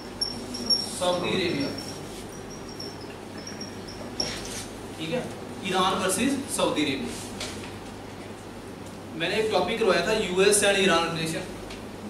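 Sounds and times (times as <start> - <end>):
whiteboard marker squeaking: 0.2 - 4.7.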